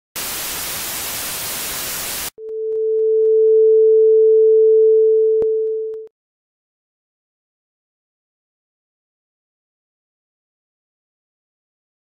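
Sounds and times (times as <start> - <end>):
television static hiss: 0.2 - 2.3.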